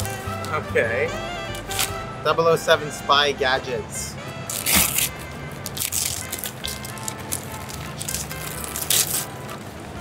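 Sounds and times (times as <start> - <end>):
background music: 0.0 - 10.0
wrapping paper tearing: 4.5 - 9.7.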